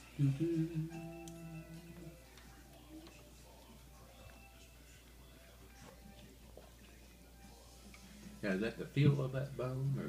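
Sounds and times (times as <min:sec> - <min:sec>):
person humming a sung note: 0:00.1 - 0:02.2.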